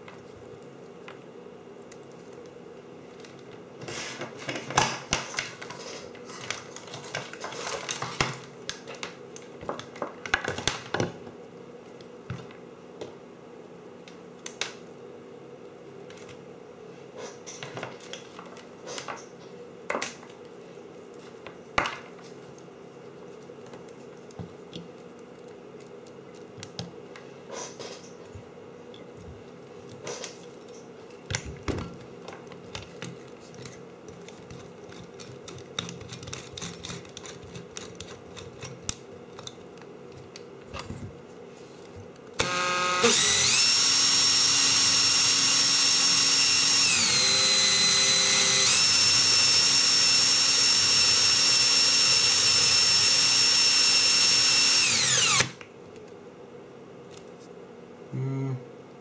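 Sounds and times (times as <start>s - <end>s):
cordless drill whining: 42.4s - 55.6s.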